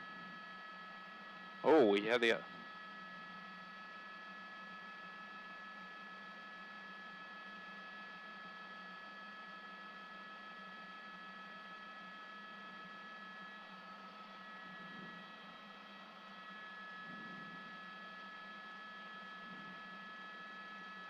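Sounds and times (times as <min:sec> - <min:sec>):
helicopter cabin whine: 0:01.6 - 0:02.6.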